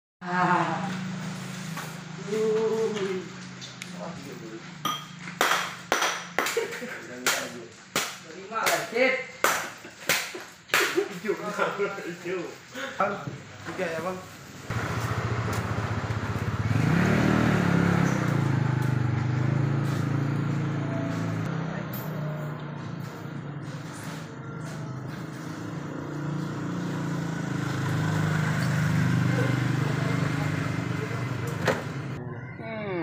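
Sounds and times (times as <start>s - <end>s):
vehicle engine running: 14.7s - 32.2s.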